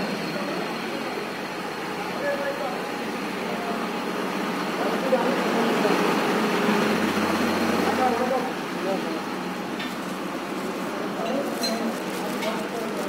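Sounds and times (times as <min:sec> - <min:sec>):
drilling rig running: 0:00.0 - 0:13.0.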